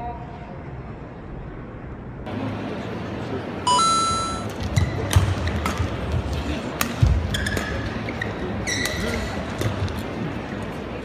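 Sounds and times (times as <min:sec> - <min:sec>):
arena crowd noise: 0:02.2 - 0:11.0
electronic two-note chime: 0:03.7 - 0:04.5.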